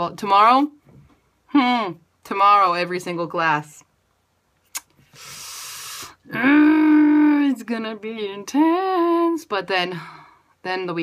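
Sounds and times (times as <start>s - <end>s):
person breathing out through mouth: 5.1s - 6.2s.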